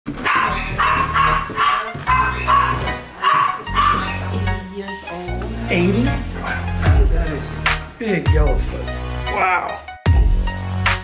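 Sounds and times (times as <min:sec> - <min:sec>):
dog barking: 0:00.2 - 0:04.3
background music with steady bass: 0:00.3 - 0:11.0.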